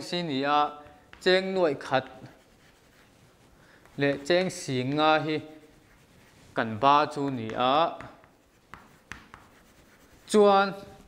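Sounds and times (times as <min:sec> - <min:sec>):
chalk scratching on a blackboard: 0:00.0 - 0:11.0.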